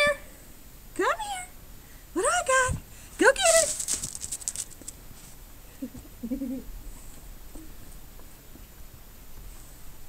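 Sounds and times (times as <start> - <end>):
crisp crunching and rustling clicks: 3.3 - 5.0.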